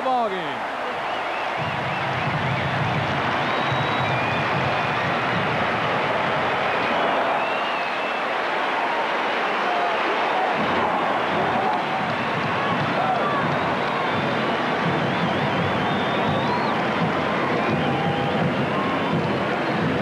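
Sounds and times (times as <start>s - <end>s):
stadium crowd cheering: 0.0s - 20.0s
shouts from crowd: 6.5s - 14.7s.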